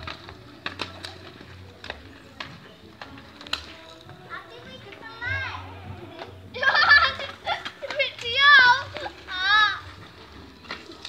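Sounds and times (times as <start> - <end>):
children calling out: 4.6 - 10.0
children shouting: 5.0 - 9.9.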